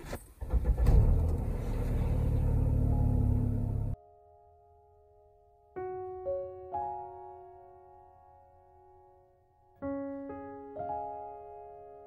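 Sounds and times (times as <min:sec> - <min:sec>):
car engine starting and idling: 0:00.0 - 0:04.0.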